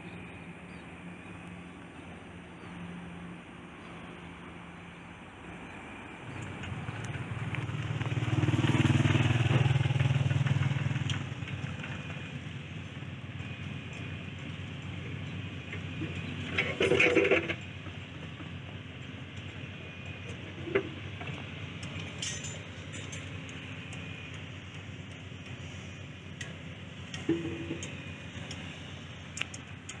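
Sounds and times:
outdoor background noise: 0.0 - 30.0
vehicle driving past: 5.9 - 12.4.

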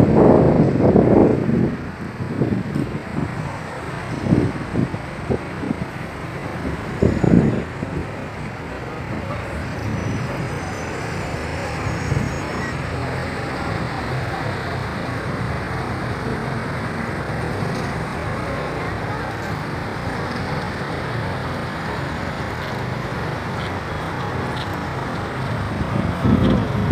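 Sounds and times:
wind on microphone: 0.0 - 14.0, 21.6 - 26.9
city traffic noise: 0.0 - 26.9.

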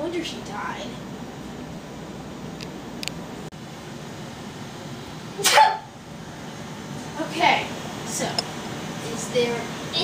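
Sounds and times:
room hiss: 0.0 - 10.0
person sneezing: 5.4 - 5.9.

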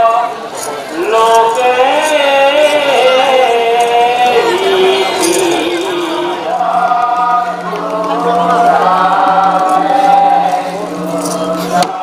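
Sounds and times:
voices chanting together: 0.0 - 12.0
steady low drone: 0.9 - 12.0.

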